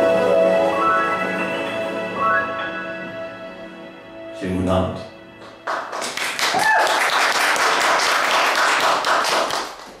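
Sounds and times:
audience applauding: 0:05.6 - 0:10.0.

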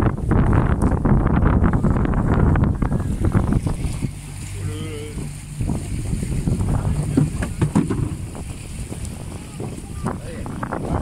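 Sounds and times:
choppy sea water: 0:00.0 - 0:11.0
water slapping against boat: 0:00.0 - 0:11.0
wind noise on microphone: 0:00.0 - 0:11.0.

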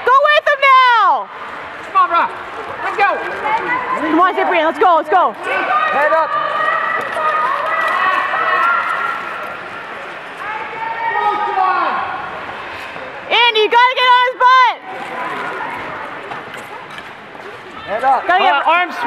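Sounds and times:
arena noise: 0:00.0 - 0:19.0
voices shouting encouragement: 0:02.1 - 0:12.3.

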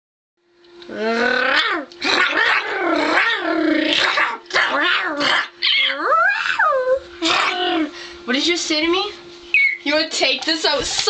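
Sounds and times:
girl making mock growls: 0:00.9 - 0:01.9, 0:02.6 - 0:04.0, 0:05.9 - 0:07.9.

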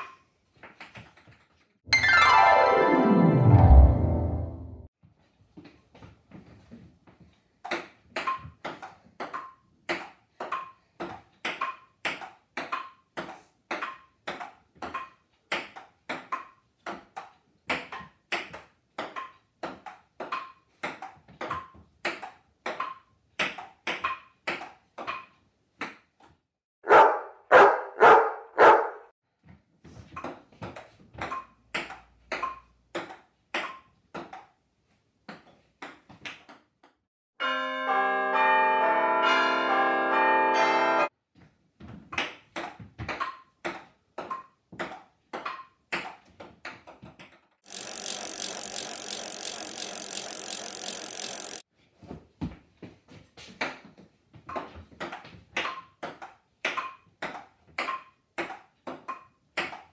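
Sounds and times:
table tennis ball clicking: 0:47.7 - 0:51.6.

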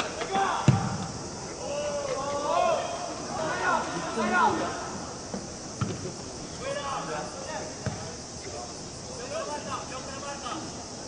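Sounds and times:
players shouting: 0:00.0 - 0:05.2
cicadas droning: 0:00.0 - 0:11.0
ball kicked sharply: 0:00.7 - 0:01.1, 0:05.8 - 0:06.1, 0:07.8 - 0:08.1.

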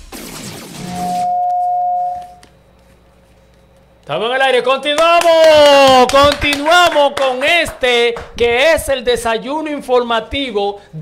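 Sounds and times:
radio jingle held tone: 0:00.8 - 0:02.4.

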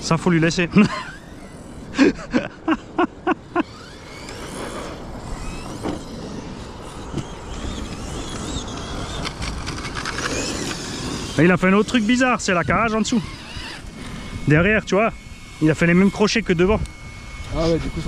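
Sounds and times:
electric toy truck motor whine: 0:00.0 - 0:18.0
person laughing: 0:00.6 - 0:01.2, 0:01.9 - 0:03.8.

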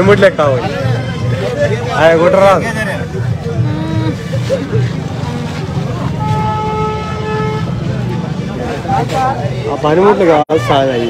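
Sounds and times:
crowd voices: 0:00.0 - 0:11.0
low street rumble: 0:00.0 - 0:11.0
vehicle horn honking: 0:06.0 - 0:07.9.

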